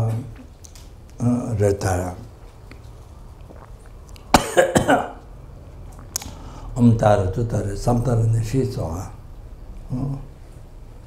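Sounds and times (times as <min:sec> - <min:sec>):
elderly man coughing: 0:04.3 - 0:05.2.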